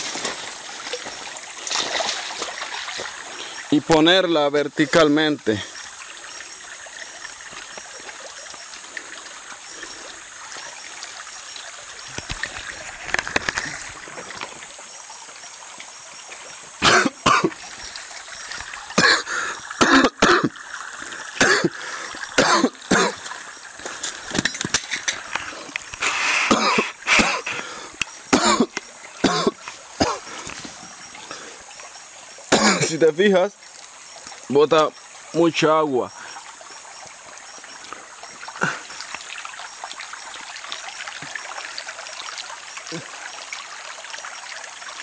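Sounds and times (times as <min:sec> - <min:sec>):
water trickling: 0:00.0 - 0:45.0
man coughing: 0:16.8 - 0:17.5, 0:19.0 - 0:20.5, 0:21.4 - 0:21.8, 0:22.4 - 0:23.2, 0:26.5 - 0:27.6, 0:28.3 - 0:30.2, 0:32.5 - 0:33.0
man gulping: 0:16.8 - 0:17.6, 0:18.8 - 0:24.6, 0:25.2 - 0:31.5, 0:32.5 - 0:32.9, 0:37.8 - 0:39.0.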